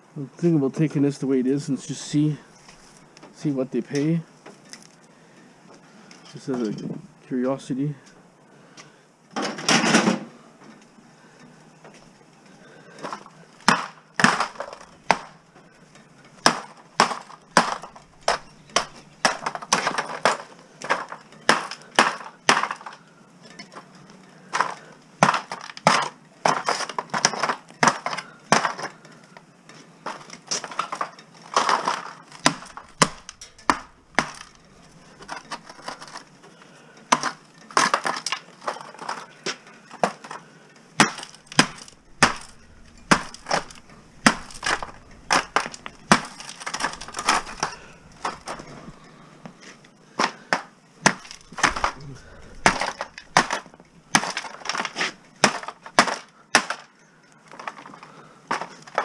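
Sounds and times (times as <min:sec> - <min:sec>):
debris falling on concrete: 0:13.0 - 0:15.4, 0:16.4 - 0:23.6, 0:30.0 - 0:36.3, 0:37.1 - 0:40.4, 0:41.0 - 0:48.9, 0:50.2 - 0:56.9.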